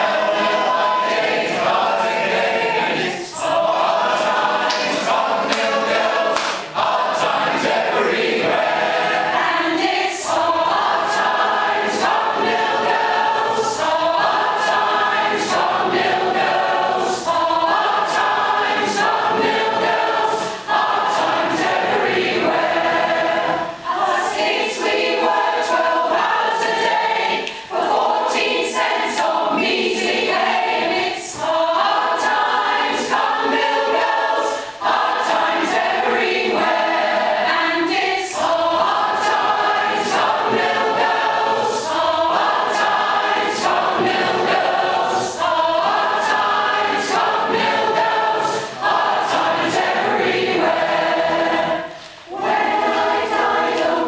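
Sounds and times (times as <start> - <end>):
mixed choir singing unaccompanied: 0.0 - 54.0.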